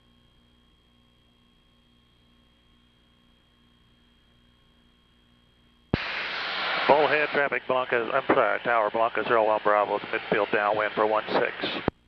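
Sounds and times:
faint steady hum: 0:00.0 - 0:12.0
loud radio hiss: 0:06.0 - 0:12.0
man speaking on radio: 0:06.9 - 0:11.9.

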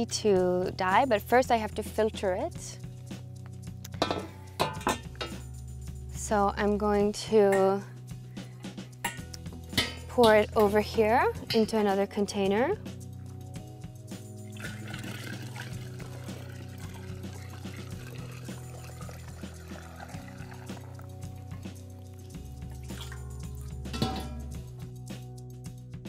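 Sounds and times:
background music: 0:00.0 - 0:26.0
liquid pouring into a glass jar: 0:14.4 - 0:24.7.

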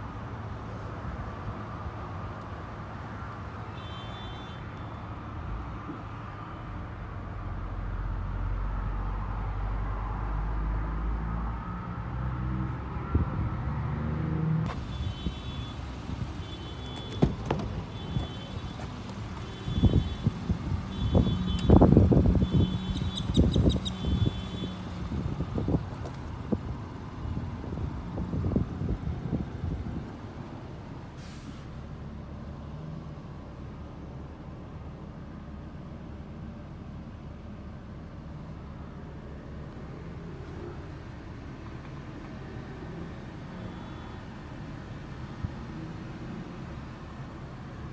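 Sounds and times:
sliding door thuds and rumble: 0:17.0 - 0:17.9.

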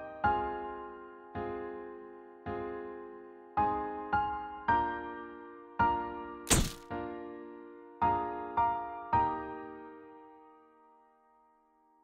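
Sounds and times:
soft piano music: 0:00.0 - 0:12.0
camera shutter sound effect: 0:06.5 - 0:06.8.

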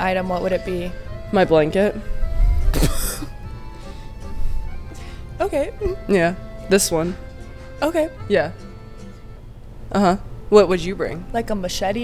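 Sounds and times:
woman clearing her throat: 0:02.7 - 0:03.4.

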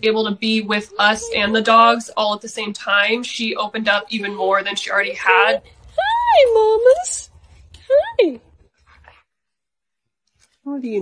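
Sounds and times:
dog whining: 0:00.6 - 0:02.0, 0:03.8 - 0:08.5.

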